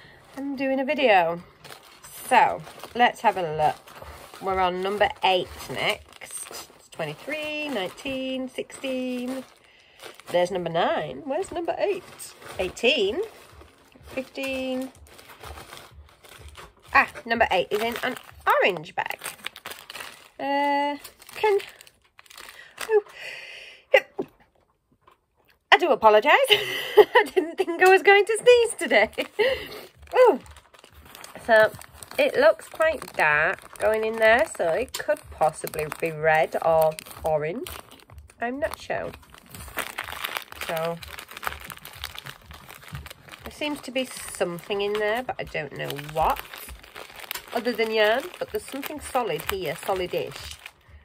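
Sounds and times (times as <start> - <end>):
faint thumping bass music: 0.0 - 20.4, 21.0 - 22.4, 27.7 - 51.0
paper crinkling and rustling: 0.0 - 23.1, 27.9 - 51.0
faint low thumping: 11.7 - 17.5, 37.0 - 44.7.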